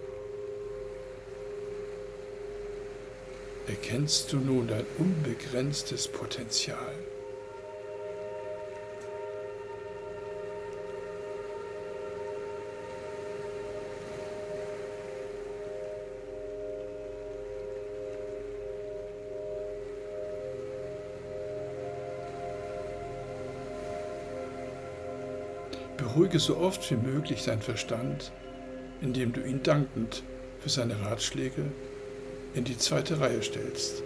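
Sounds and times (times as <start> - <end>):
layered ambient drone: 0.0 - 34.0
soft low tones: 0.0 - 34.0.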